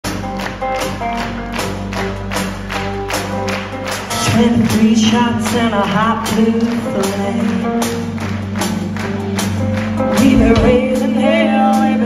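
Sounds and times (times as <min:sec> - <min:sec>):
live band playing amplified music: 0:00.0 - 0:12.0.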